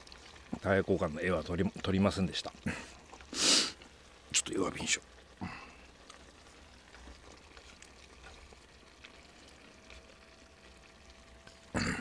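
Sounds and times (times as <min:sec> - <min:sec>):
food sizzling in a skillet: 0:00.0 - 0:12.0.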